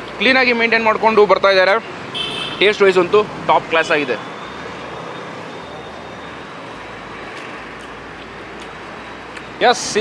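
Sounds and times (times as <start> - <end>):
road traffic hum: 0.0 - 10.0.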